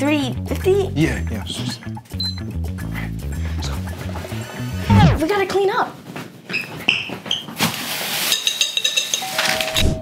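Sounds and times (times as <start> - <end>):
dishes and utensils clinking: 8.2 - 9.8.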